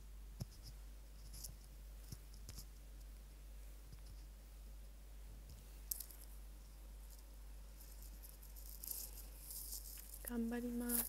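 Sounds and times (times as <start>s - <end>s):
earbuds rustling crackle: 5.4s - 11.0s.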